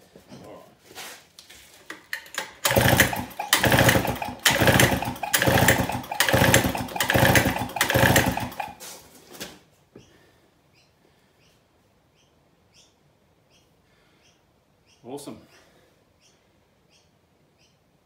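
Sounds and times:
outboard engine pull-start cranking: 0:02.1 - 0:08.8.

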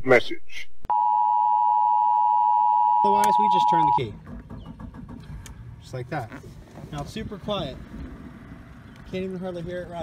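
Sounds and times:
two-note electronic beep: 0:00.9 - 0:04.0.

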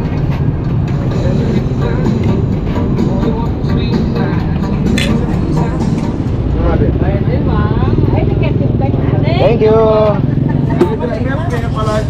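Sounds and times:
traffic engine rumble: 0:00.0 - 0:12.0
voices talking: 0:01.0 - 0:12.0.

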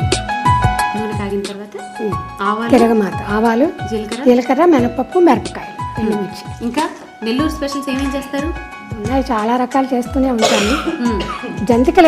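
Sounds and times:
background music: 0:00.0 - 0:12.0
women's voices: 0:01.0 - 0:12.0
short harsh cough: 0:10.4 - 0:11.5.

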